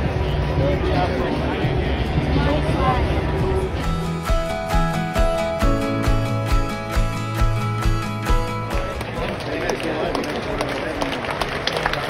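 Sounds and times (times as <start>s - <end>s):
music over stadium speakers: 0.0s - 9.8s
crowd chatter: 0.0s - 12.0s
sharp claps: 7.9s - 12.0s.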